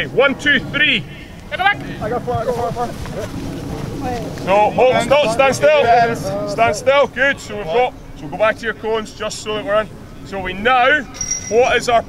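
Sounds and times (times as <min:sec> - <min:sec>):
wind noise on microphone: 0:00.0 - 0:08.6
voices calling out: 0:00.0 - 0:12.0.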